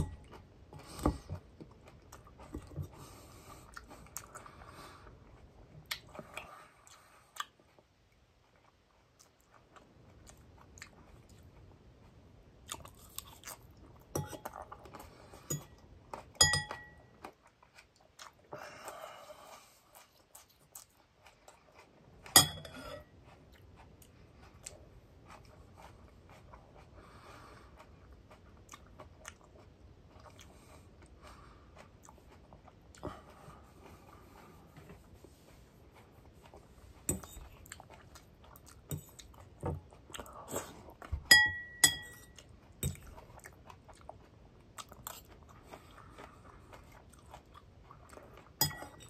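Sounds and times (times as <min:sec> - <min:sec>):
salad being chewed: 0:00.0 - 0:49.0
metal fork clinking: 0:16.4 - 0:17.0, 0:41.3 - 0:42.3, 0:48.6 - 0:49.0.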